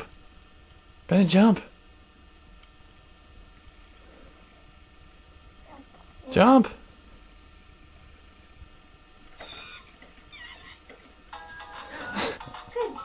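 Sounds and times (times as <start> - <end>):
baby toy electronic music: 11.3 - 13.0.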